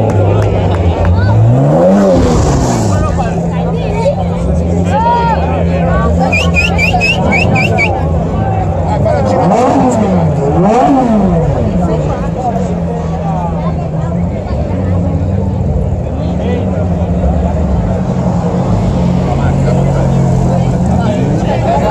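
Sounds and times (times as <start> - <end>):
car engine revving: 0.0 - 21.9
crowd chatter: 0.0 - 21.9
sports car engines idling: 0.0 - 21.9.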